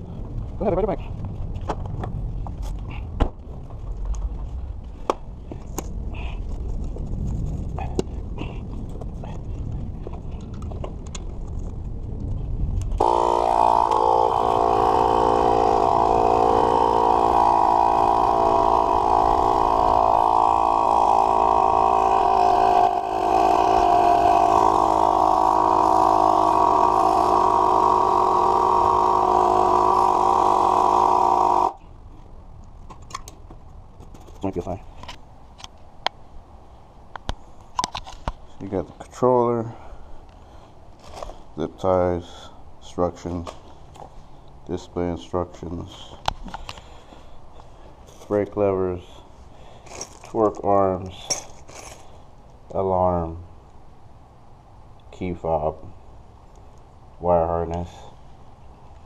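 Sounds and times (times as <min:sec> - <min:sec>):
tire inflator compressor running: 0:13.0 - 0:31.9.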